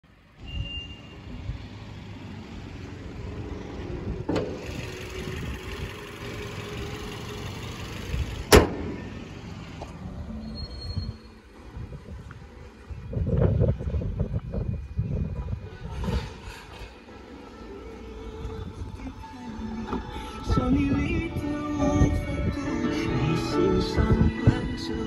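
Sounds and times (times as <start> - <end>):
car engine idling: 1.0 - 10.3.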